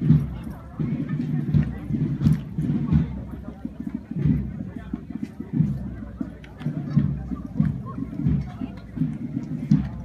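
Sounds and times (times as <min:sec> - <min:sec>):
people talking in low voices: 0:00.0 - 0:10.0.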